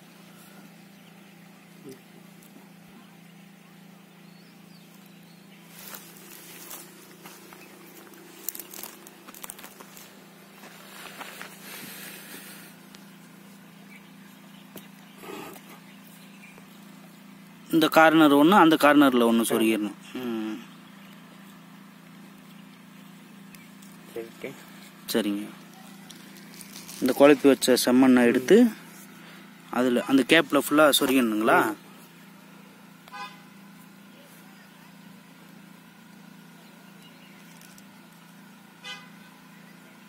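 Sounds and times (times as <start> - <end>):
low motor drone: 0.0 - 40.0
steady low hum: 0.0 - 40.0.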